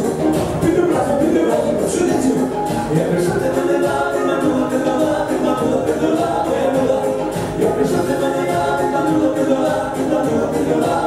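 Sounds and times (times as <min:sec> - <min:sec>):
live band dance music: 0:00.0 - 0:11.0
several voices singing together: 0:00.0 - 0:11.0.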